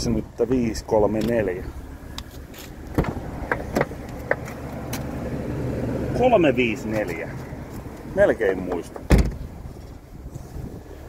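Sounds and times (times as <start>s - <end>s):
car door latch clicking open: 2.9s - 5.1s, 8.7s - 9.5s.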